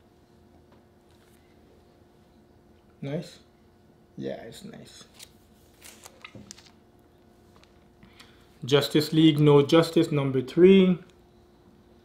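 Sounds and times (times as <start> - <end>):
plastic bags and paper crinkling: 5.7 - 6.8.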